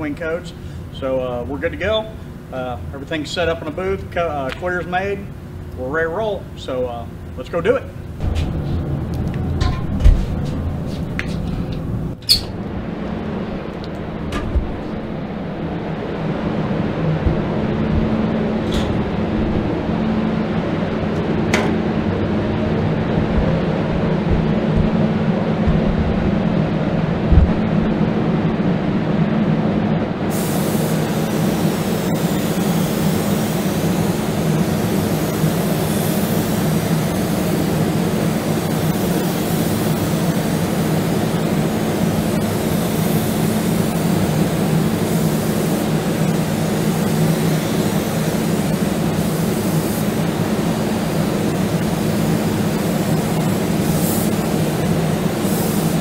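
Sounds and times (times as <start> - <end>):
fans humming: 0.0 - 56.0
spray gun hissing: 30.3 - 56.0.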